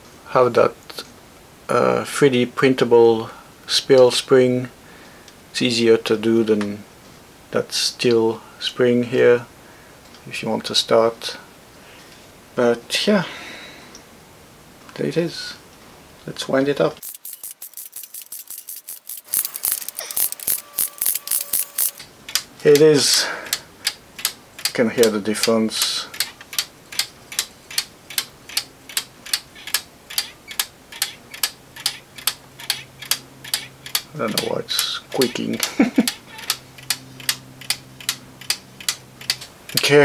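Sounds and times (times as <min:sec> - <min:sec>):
watch winding ratchet clicking: 0:17.0 - 0:22.4, 0:23.8 - 0:39.8.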